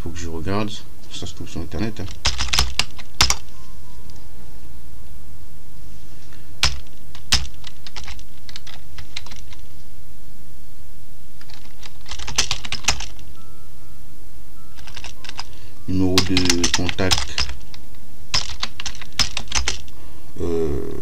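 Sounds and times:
keyboard typing: 2.0 - 3.5, 6.6 - 9.6, 11.4 - 13.3, 14.8 - 19.9.

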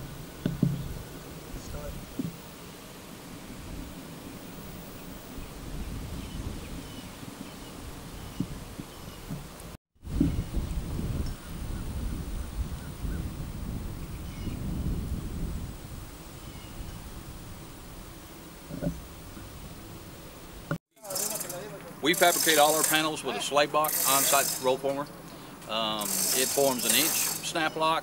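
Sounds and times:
wind buffeting microphone: 0.0 - 2.5, 3.4 - 20.8.

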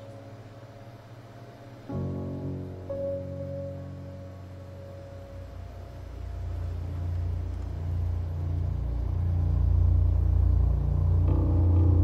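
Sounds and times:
higher hum: 0.0 - 12.0
deep low rumble: 5.9 - 12.0.

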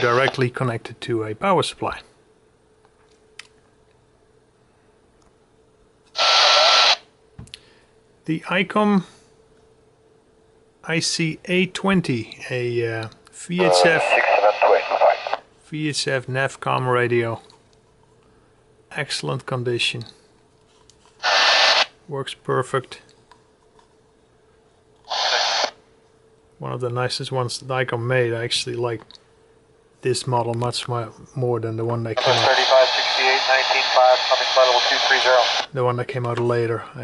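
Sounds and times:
radio static hiss burst: 0.0 - 0.4, 6.2 - 7.0, 13.6 - 15.4, 21.2 - 21.9, 25.1 - 25.8, 32.2 - 35.7.

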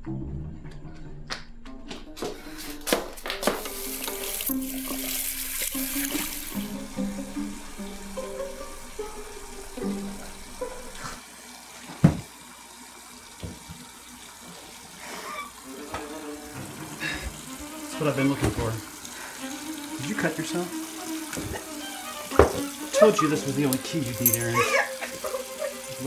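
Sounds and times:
film score with low held notes: 0.0 - 11.2, 15.7 - 24.6
hiss like running tap: 2.4 - 26.0.

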